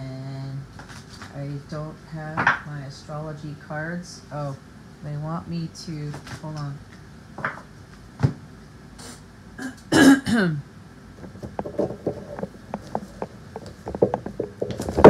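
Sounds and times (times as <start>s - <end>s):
woman clearing her throat: 9.6s - 10.7s.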